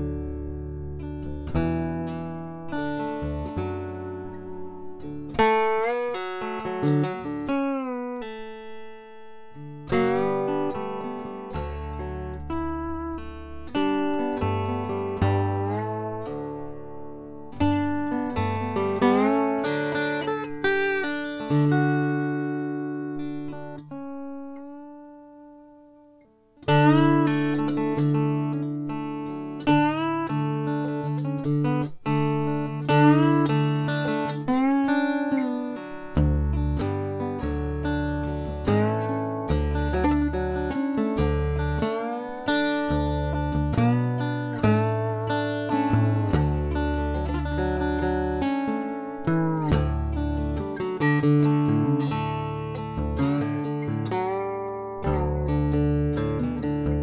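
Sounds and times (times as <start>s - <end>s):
slide guitar playing: 0.0s - 57.0s.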